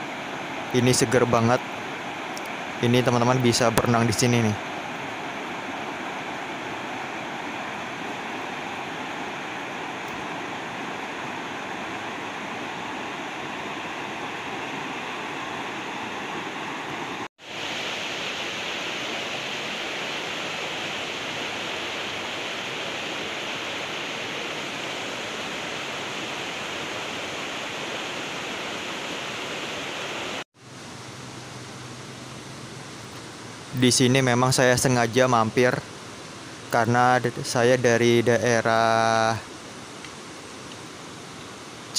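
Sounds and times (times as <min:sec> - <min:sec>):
river rushing over stones: 0:00.0 - 0:41.9.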